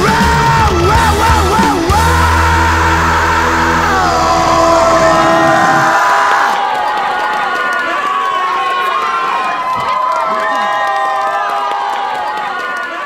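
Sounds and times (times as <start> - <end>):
rock band held chord: 0.0 - 6.6
audience cheering and clapping: 0.0 - 13.0
pitched line sliding downward: 3.4 - 6.6.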